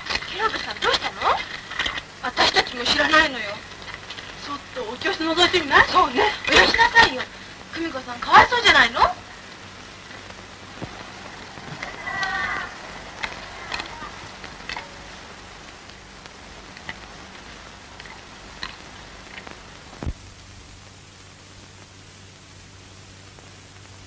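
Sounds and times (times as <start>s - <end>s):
film soundtrack hiss and clicks: 0.0s - 24.0s.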